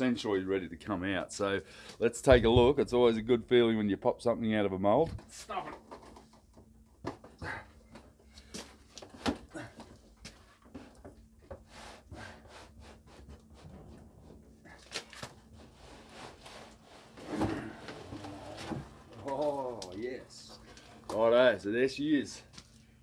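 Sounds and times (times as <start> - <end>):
heavy handling noise: 5.0 - 21.4
fibreglass cracking and creaking: 17.2 - 21.3.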